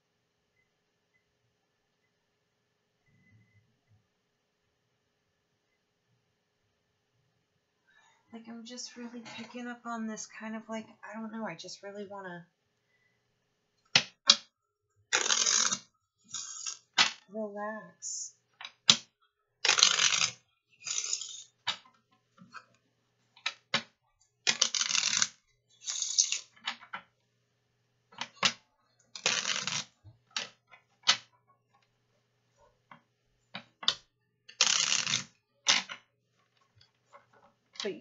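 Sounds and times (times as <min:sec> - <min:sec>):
deck of cards being shuffled: 0:15.1 - 0:17.2, 0:19.7 - 0:21.8, 0:24.5 - 0:26.5, 0:29.2 - 0:31.3, 0:34.5 - 0:36.0
card deck snapping: 0:15.2 - 0:15.8, 0:19.7 - 0:21.4, 0:24.5 - 0:25.3.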